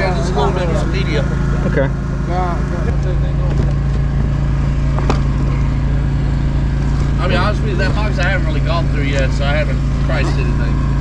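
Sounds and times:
engine running steadily: 0.0s - 11.0s.

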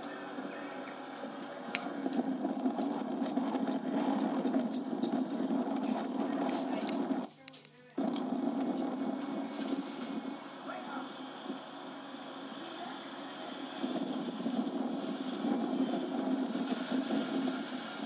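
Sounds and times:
muffled television voices: 0.0s - 18.0s.

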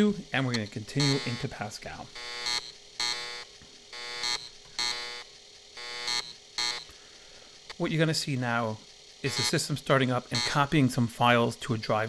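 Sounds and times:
floppy disk drive buzzing: 0.0s - 12.0s.

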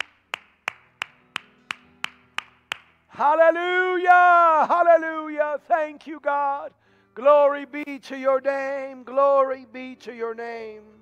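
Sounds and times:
person clapping hands: 0.0s - 3.0s.

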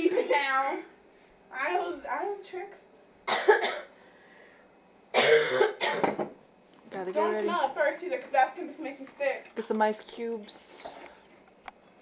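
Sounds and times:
person coughing harshly: 3.2s - 4.0s, 5.1s - 6.3s.

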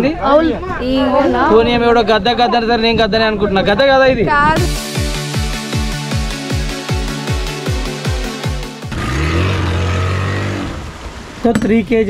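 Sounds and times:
outboard motor engine drone: 8.9s - 11.4s.

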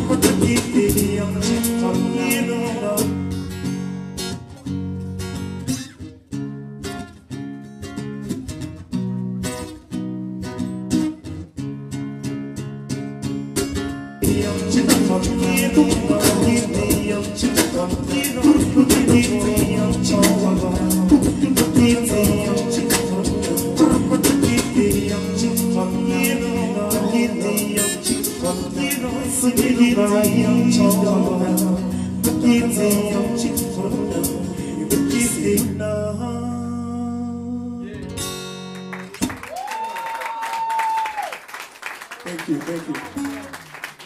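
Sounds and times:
man singing: 0.0s - 3.3s, 14.2s - 38.1s
strummed guitar: 0.0s - 39.4s.

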